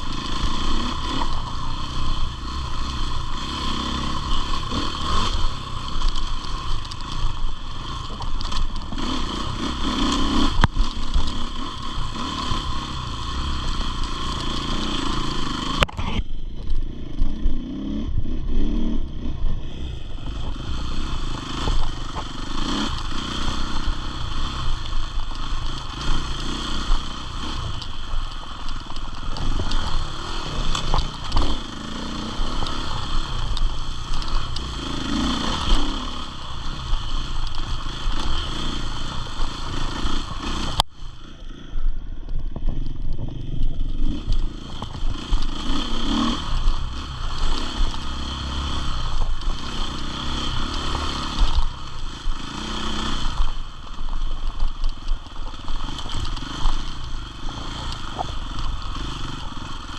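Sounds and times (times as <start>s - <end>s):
motorcycle clatter over rough ground: 0.0s - 59.9s
motorcycle engine revving: 0.0s - 59.9s.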